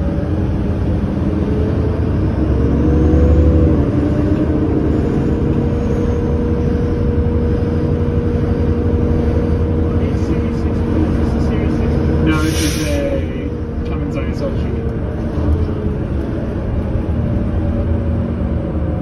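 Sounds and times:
bus engine droning: 0.0s - 19.0s.

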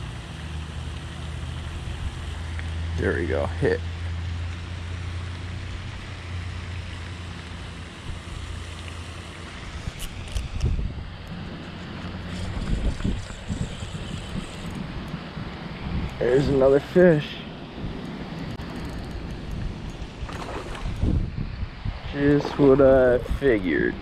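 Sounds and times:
wind rumbling on microphone: 9.4s - 24.0s
fishing reel clicks and knocks: 18.6s - 20.0s.

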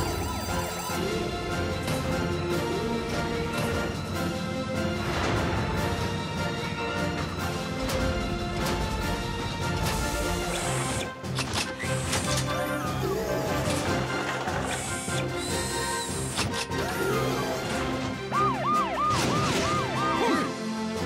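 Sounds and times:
siren-like warble: 0.0s - 1.3s, 18.3s - 20.6s
cartoon music: 0.0s - 1.7s, 12.6s - 20.7s.

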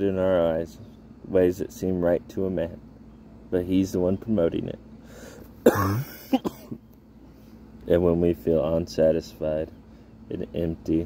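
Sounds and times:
man clearing his throat: 5.6s - 6.8s
man speaking: 10.3s - 11.0s.

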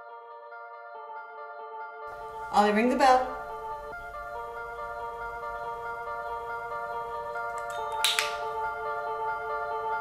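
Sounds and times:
soft mallet background music: 2.1s - 10.0s.

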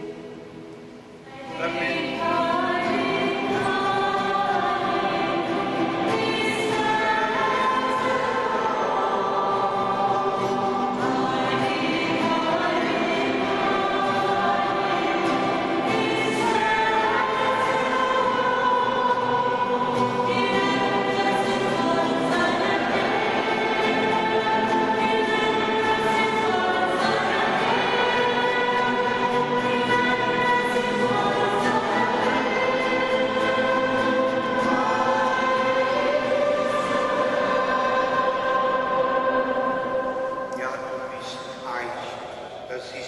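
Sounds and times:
acoustic guitar: 0.0s - 43.0s
women singing a worship song: 1.2s - 40.5s.

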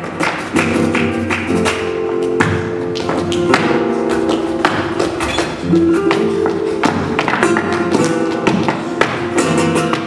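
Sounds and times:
guitar: 0.0s - 10.0s
sharp percussive taps: 0.0s - 10.0s
held melodic notes: 1.8s - 10.0s.

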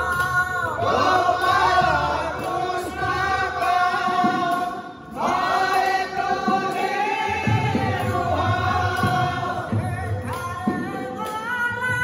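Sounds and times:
men singing together: 0.0s - 12.0s.

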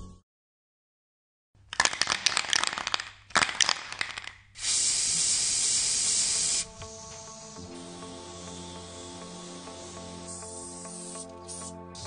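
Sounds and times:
music: 0.0s - 0.2s, 5.8s - 12.0s
spray can rattling: 1.7s - 12.0s
spray can hissing: 2.6s - 12.0s.

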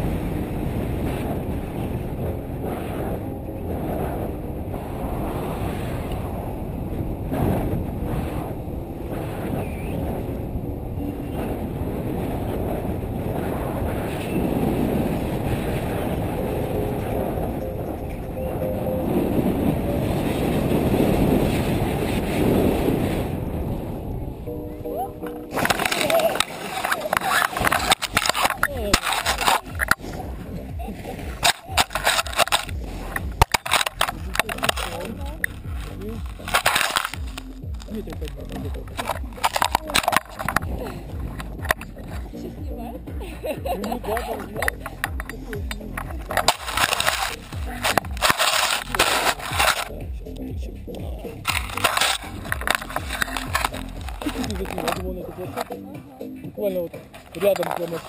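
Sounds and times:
wind rushing over microphone: 0.0s - 58.0s
scraping and crackling on snow: 25.5s - 42.4s, 44.0s - 50.0s, 51.5s - 55.8s, 57.1s - 58.0s.

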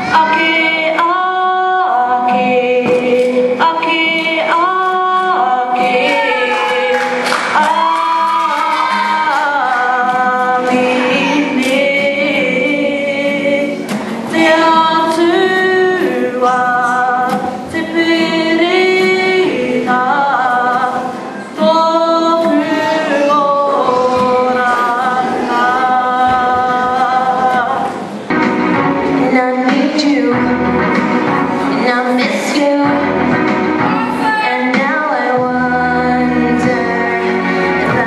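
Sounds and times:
woman singing into a microphone: 0.0s - 28.1s, 28.7s - 38.0s.

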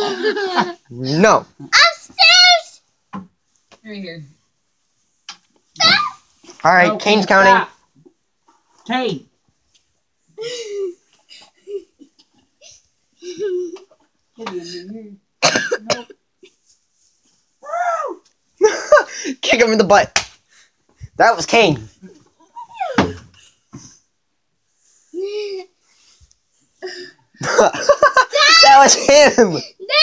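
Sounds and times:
child's rough outburst: 1.6s - 2.8s, 5.8s - 6.3s, 17.6s - 18.2s, 28.3s - 30.0s
child laughing: 10.4s - 14.0s, 27.5s - 28.8s
child's wavering vocal sound: 25.1s - 25.8s.

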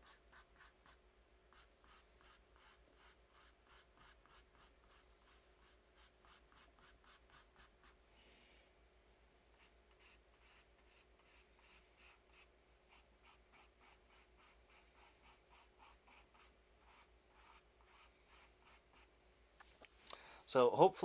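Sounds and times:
paintbrush strokes on canvas: 0.0s - 8.0s, 9.6s - 19.8s.

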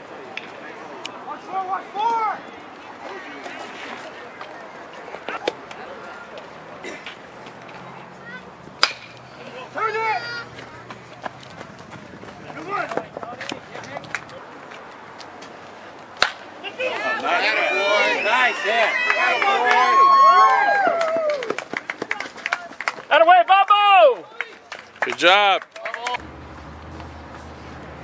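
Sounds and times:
people shouting and cheering: 1.2s - 3.5s, 9.4s - 11.0s, 16.6s - 26.2s
metal bat hitting ball: 8.8s - 9.2s.

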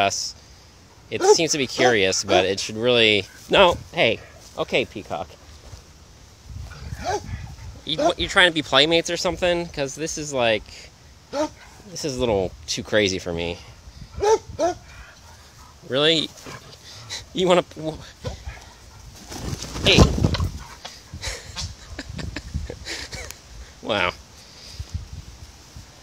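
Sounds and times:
dog calls: 1.1s - 2.6s, 6.7s - 8.3s, 11.3s - 11.9s, 14.2s - 17.4s
dog whining: 6.9s - 7.4s, 11.3s - 11.6s, 14.2s - 14.9s
scuffle: 18.2s - 21.1s.

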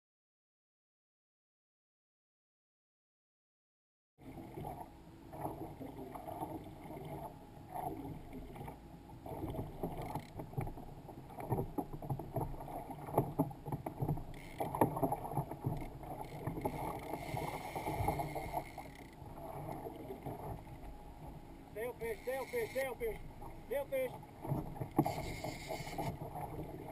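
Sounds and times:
water lapping against hull: 4.2s - 26.9s.

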